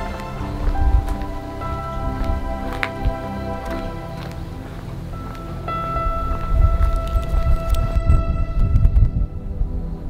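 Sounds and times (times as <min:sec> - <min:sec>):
heavy low rumble: 0:00.0 - 0:10.0
music with long high notes: 0:00.0 - 0:10.0.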